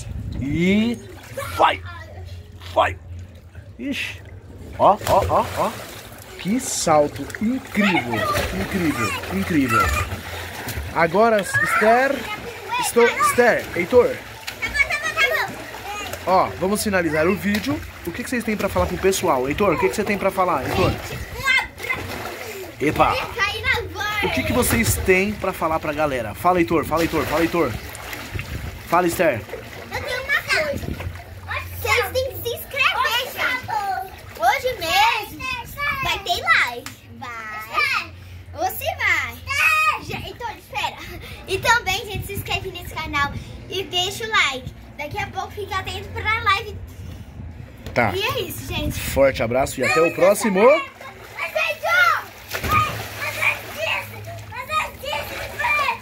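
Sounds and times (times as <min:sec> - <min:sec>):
water splashing in a pool: 0:00.0 - 0:45.0, 0:47.4 - 0:56.0
child's voice: 0:01.3 - 0:02.5, 0:07.7 - 0:10.2, 0:14.6 - 0:16.2, 0:20.7 - 0:24.5, 0:29.9 - 0:46.9, 0:49.8 - 0:56.0
children chattering: 0:07.5 - 0:17.9, 0:49.8 - 0:56.0.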